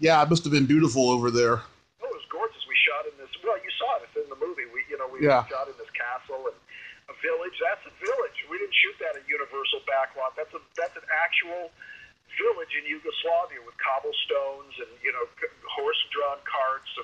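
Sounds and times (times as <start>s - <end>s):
person talking: 0.0s - 11.8s, 12.4s - 17.0s.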